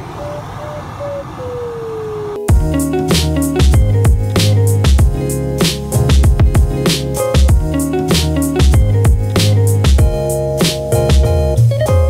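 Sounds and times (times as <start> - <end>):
music with a beat: 2.5 - 12.0.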